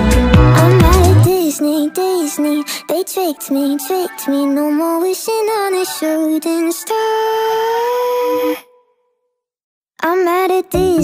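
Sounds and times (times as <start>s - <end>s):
sped-up pop song high note: 0.0s - 7.2s.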